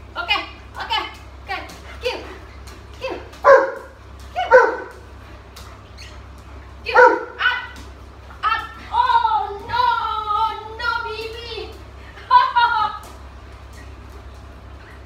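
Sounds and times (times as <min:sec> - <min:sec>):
dog barking excitedly: 0:03.0 - 0:05.1, 0:06.8 - 0:07.8.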